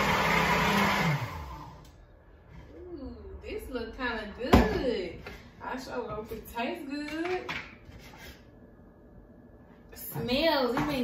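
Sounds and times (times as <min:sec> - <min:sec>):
blender motor winding down: 0:00.0 - 0:02.0.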